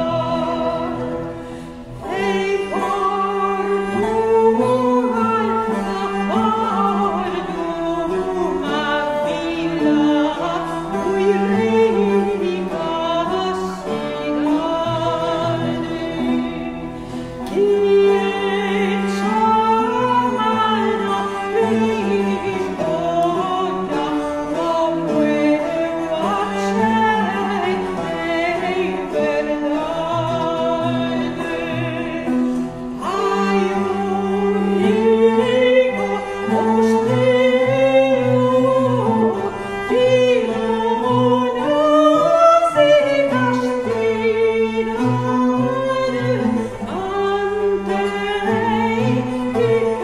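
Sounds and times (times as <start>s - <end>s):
bowed fiddles: 0.0s - 50.0s
plucked lutes: 0.0s - 50.0s
woman singing: 0.0s - 50.0s.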